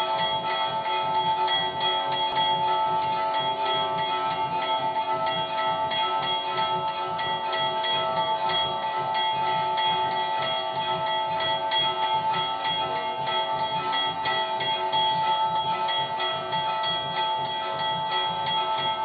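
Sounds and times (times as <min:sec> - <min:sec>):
bells ringing rapidly: 0:00.0 - 0:19.0
quick low beat: 0:00.0 - 0:19.0.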